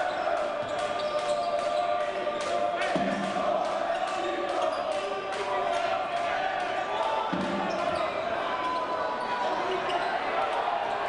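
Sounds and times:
hum of crowd voices: 0.0 - 11.0
players calling out: 0.0 - 11.0.

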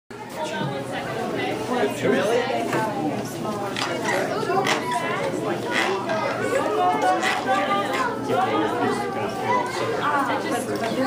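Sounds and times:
indistinct chatter of voices: 0.1 - 11.0.

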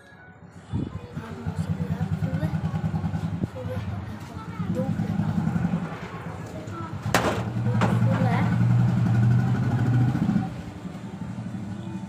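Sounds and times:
engine running: 1.1 - 12.0.

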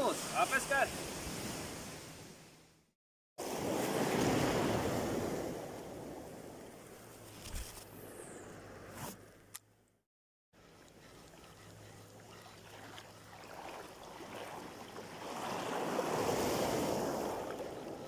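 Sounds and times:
ocean surf washing: 0.0 - 2.5, 3.4 - 6.8, 12.6 - 18.0.

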